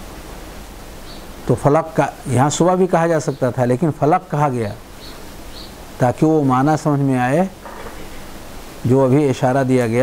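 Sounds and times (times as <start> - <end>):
steady background hiss: 0.0 - 10.0
man speaking: 1.5 - 4.8, 6.0 - 7.6, 8.9 - 10.0.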